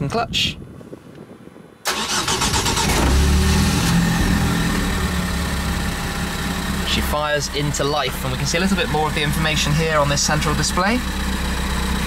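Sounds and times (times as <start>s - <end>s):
car engine starting and idling: 1.8s - 12.0s.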